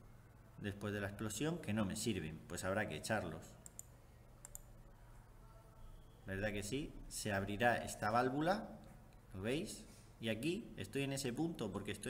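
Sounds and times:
low steady hum: 0.0s - 12.0s
faint computer mouse click: 3.6s - 4.7s.

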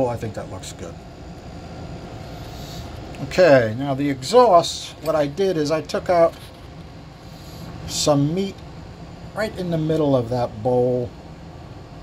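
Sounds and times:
workshop background rumble: 0.0s - 12.0s.

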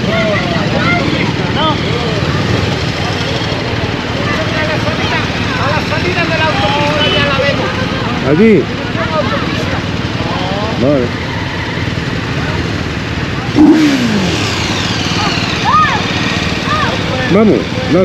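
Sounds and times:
motorcycle engines idling: 0.0s - 18.0s
street traffic: 0.0s - 18.0s.

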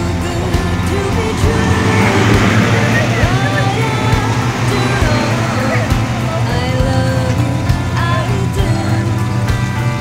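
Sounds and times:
car engine rumbling: 0.0s - 10.0s
music: 0.0s - 10.0s
voices: 0.0s - 10.0s.

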